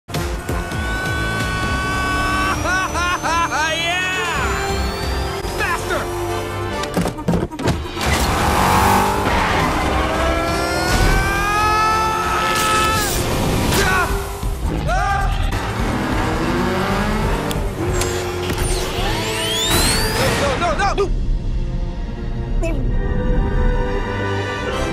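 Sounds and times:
film soundtrack music: 0:00.1 - 0:24.9
racing car sound effects: 0:00.2 - 0:06.7, 0:07.3 - 0:20.4.

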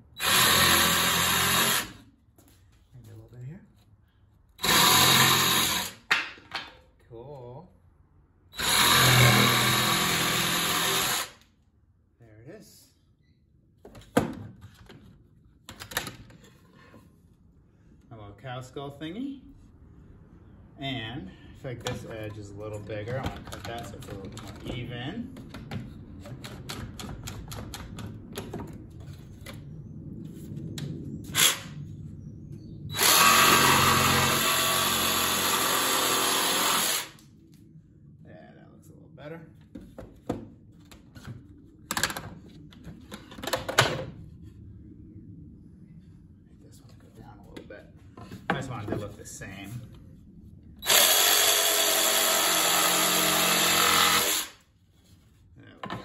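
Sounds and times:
jigsaw cutting plywood: 0:00.2 - 0:02.0, 0:04.6 - 0:06.0, 0:08.6 - 0:11.4, 0:33.0 - 0:37.1, 0:50.8 - 0:54.6.

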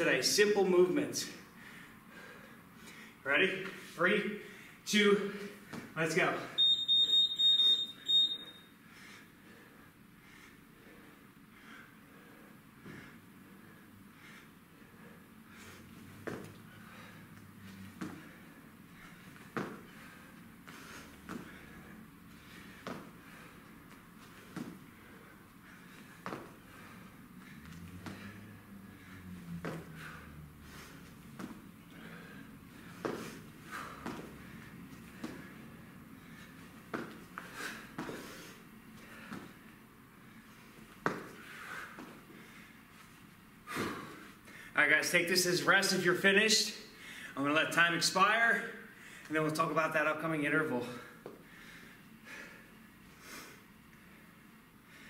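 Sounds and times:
man breathing hard: 0:01.4 - 0:03.2, 0:03.8 - 0:05.8, 0:08.8 - 0:44.8, 0:46.9 - 0:47.4, 0:48.8 - 0:49.3, 0:50.8 - 0:55.0
hands and feet thudding on rubber floor: 0:16.0 - 0:16.6, 0:17.9 - 0:18.4, 0:19.2 - 0:20.0, 0:20.6 - 0:21.7, 0:22.7 - 0:23.2, 0:23.9 - 0:24.9, 0:26.0 - 0:26.6, 0:30.7 - 0:31.7, 0:32.8 - 0:35.5, 0:36.6 - 0:39.6, 0:40.8 - 0:42.3.

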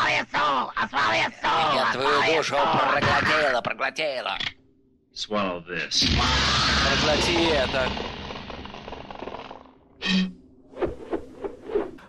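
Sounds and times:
dense noisy crackling din: 0:06.0 - 0:09.8.

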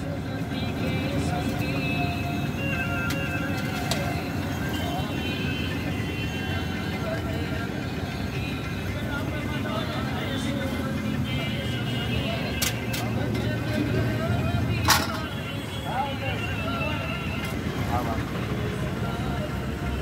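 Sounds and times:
voices in background: 0:00.0 - 0:20.0.

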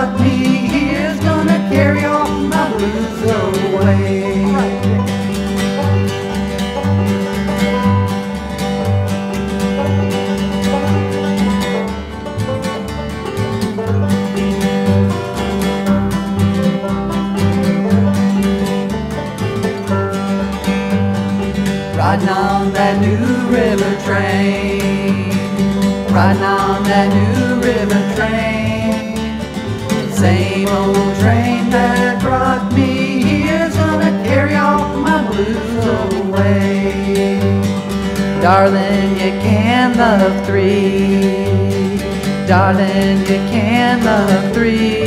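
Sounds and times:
bluegrass picked strings: 0:00.0 - 0:45.0
steady alternating bass: 0:00.0 - 0:45.0.

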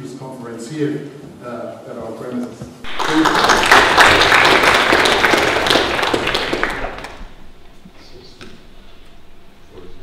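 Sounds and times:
audience applauding: 0:02.8 - 0:07.4.

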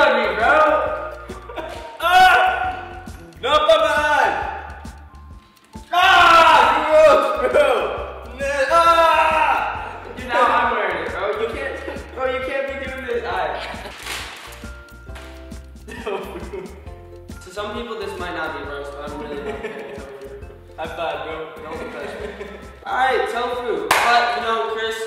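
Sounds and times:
background music: 0:00.0 - 0:25.0
men laughing hard: 0:01.3 - 0:02.9, 0:13.4 - 0:14.1, 0:15.9 - 0:16.8, 0:19.2 - 0:20.3, 0:21.8 - 0:22.8.

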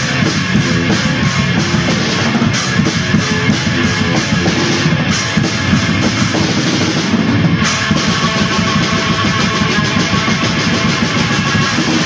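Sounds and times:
distorted guitar: 0:00.0 - 0:12.0
fast drumming: 0:00.0 - 0:12.0.

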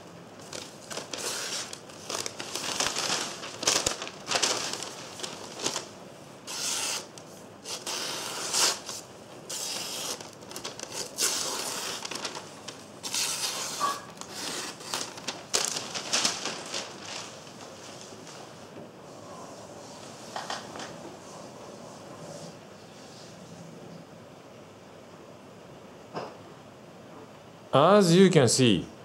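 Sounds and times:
newspaper rustling: 0:00.4 - 0:18.7.

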